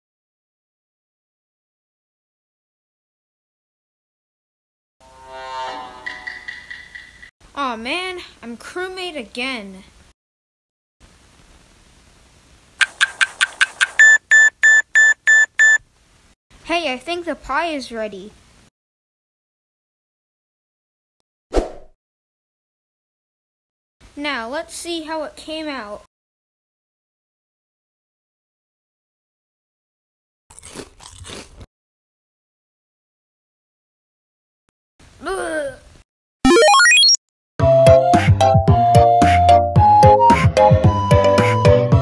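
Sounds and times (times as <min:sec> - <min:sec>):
oven timer chirps: 0:13.9 - 0:15.8
high-pitched timer beeps: 0:14.0 - 0:15.8, 0:36.5 - 0:37.2
crunchy biting and chewing: 0:30.5 - 0:31.7.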